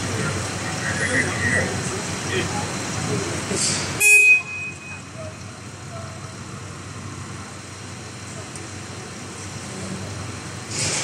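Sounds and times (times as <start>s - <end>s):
diesel tractor engine idling: 0.0s - 11.0s
loud hiss: 10.6s - 11.0s.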